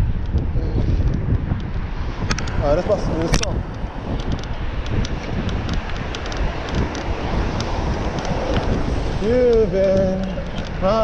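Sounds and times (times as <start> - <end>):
low road rumble: 0.0 - 11.0
wind buffeting microphone: 0.0 - 11.0
light ticks: 3.2 - 11.0.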